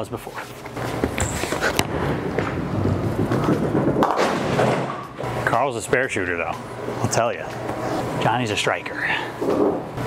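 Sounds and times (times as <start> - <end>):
bowling ball rolling: 0.9 - 5.3.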